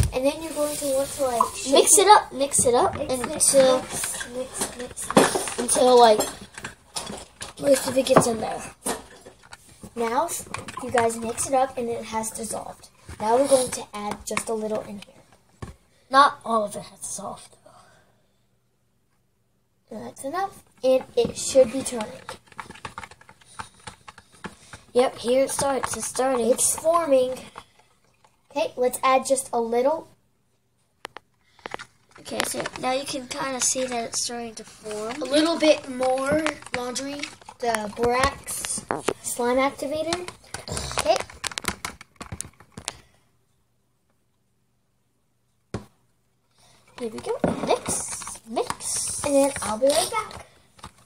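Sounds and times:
stick scraping plastic tub: 0.0s - 12.6s, 20.8s - 27.6s, 32.2s - 41.7s, 47.0s - 50.4s.

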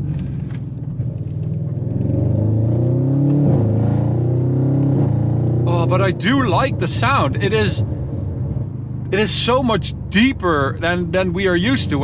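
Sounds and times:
car engine revving from inside: 1.1s - 6.2s.

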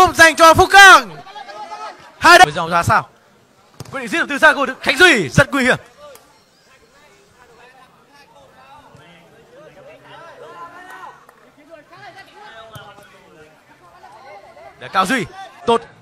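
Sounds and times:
distant shouts and chatter: 0.0s - 16.0s.

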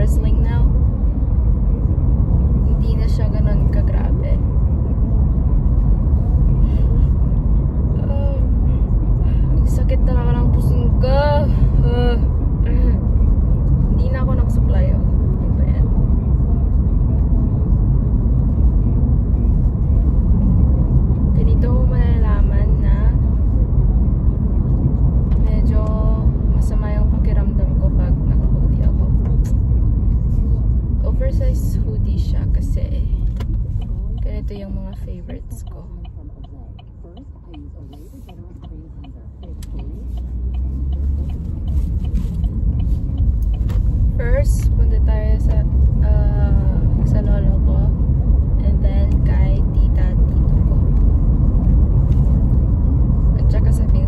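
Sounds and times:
car cabin road rumble: 0.0s - 54.0s.

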